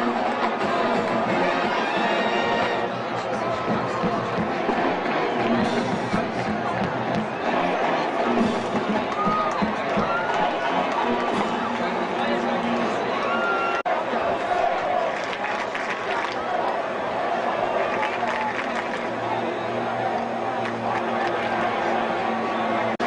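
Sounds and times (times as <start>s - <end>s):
marching band playing: 0.0s - 11.7s
noisy crowd cheering: 0.0s - 23.0s.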